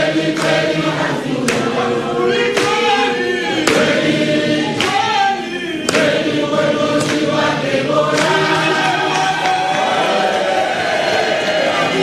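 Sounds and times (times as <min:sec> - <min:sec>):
crowd singing in chorus: 0:00.0 - 0:12.0.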